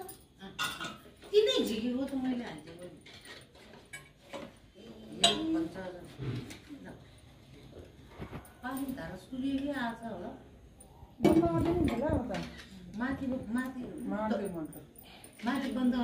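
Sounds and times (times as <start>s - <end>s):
light clicks and clinks: 10.8s - 16.0s.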